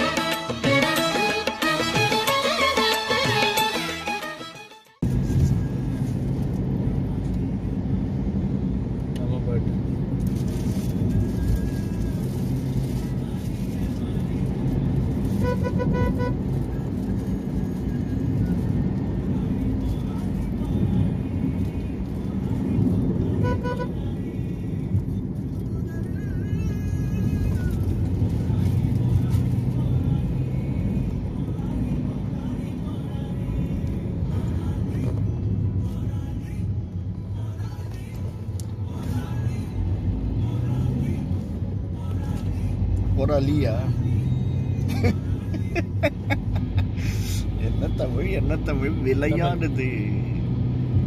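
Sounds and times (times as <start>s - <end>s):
vehicle horn: 0.0s - 5.0s, 15.4s - 16.5s, 23.3s - 24.1s
car engine and tyre road noise: 0.0s - 51.0s.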